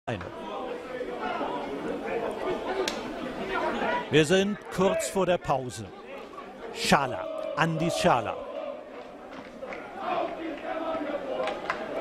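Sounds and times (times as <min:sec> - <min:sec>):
crowd chattering and calling: 0:00.1 - 0:12.0.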